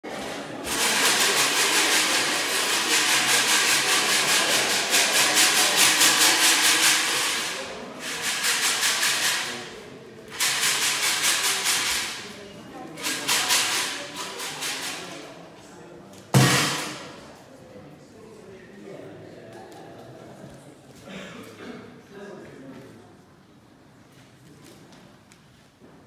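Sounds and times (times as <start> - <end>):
shaken rattling hiss: 0.7 - 9.7, 10.3 - 12.2, 13.0 - 15.2.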